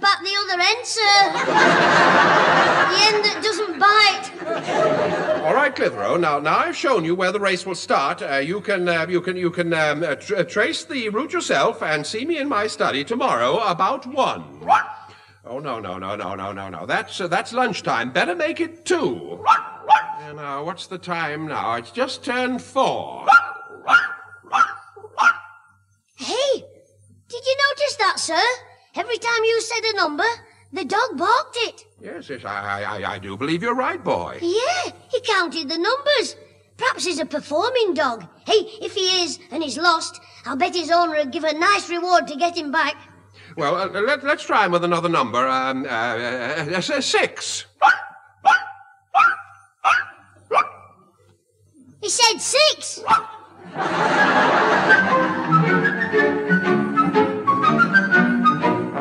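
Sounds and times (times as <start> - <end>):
dog barking: 14.6 - 15.1, 19.4 - 20.3, 23.2 - 25.7, 47.8 - 51.0, 53.0 - 53.5.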